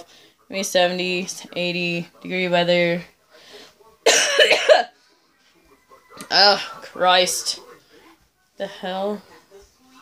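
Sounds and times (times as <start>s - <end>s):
woman coughing: 4.1s - 4.9s.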